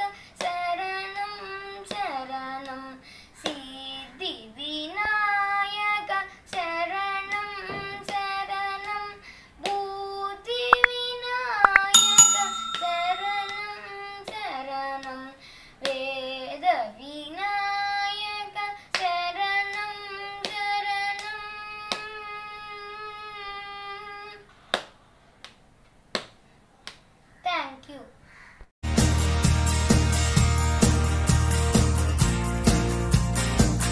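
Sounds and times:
boy singing unaccompanied: 0:00.0 - 0:10.5
short metallic ring: 0:11.8 - 0:13.9.

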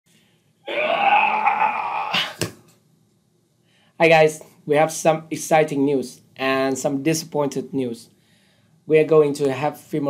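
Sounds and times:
man yelling excitedly: 0:00.7 - 0:02.4.

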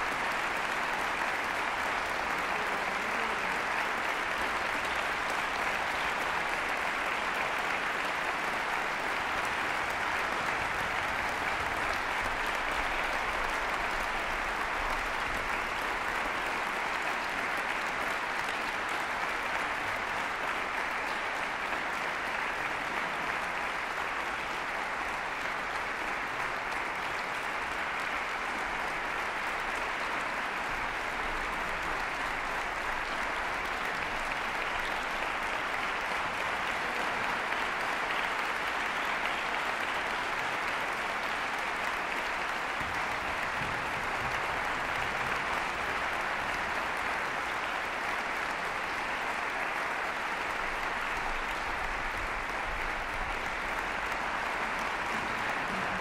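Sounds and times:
audience applauding: 0:00.0 - 0:56.0.

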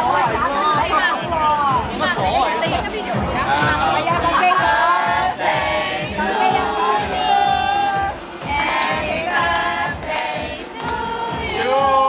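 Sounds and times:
group singing together: 0:03.3 - 0:12.0.

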